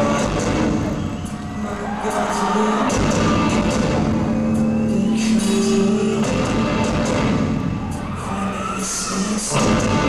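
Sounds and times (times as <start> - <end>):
live rock band playing: 0.0 - 8.7, 9.4 - 10.0.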